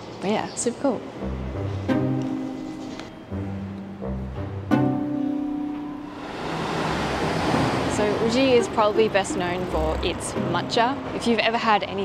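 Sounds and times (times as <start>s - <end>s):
steady rushing noise: 6.0s - 11.9s.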